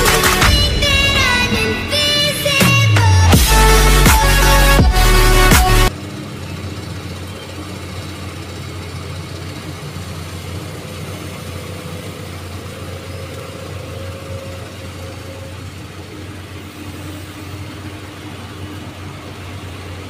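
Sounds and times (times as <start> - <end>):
excavator diesel engine running: 0.0 - 20.0.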